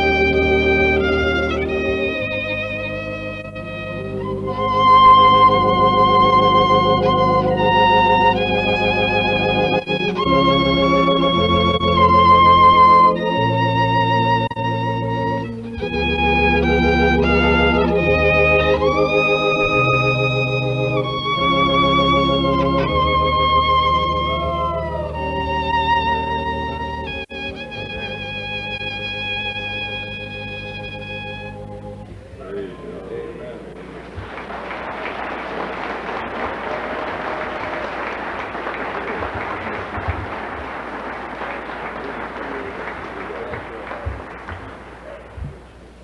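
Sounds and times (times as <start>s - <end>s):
organ chords: 0.0s - 46.0s.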